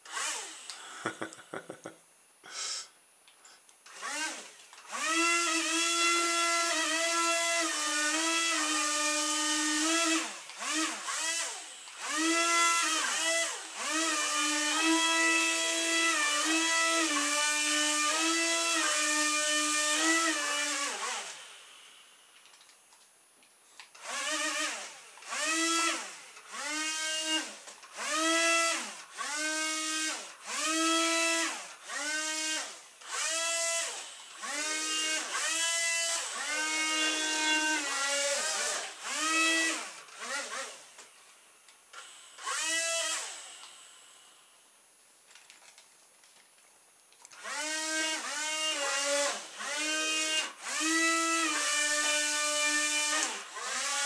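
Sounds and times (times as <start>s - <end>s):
small electric motors whining: 0.0s - 0.8s, 3.8s - 22.2s, 23.8s - 41.0s, 41.9s - 44.5s, 47.2s - 54.0s.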